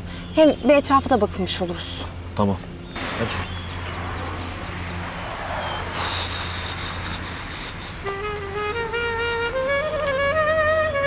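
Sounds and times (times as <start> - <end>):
outdoor background hiss: 0.0 - 11.0
steady low hum: 0.0 - 11.0.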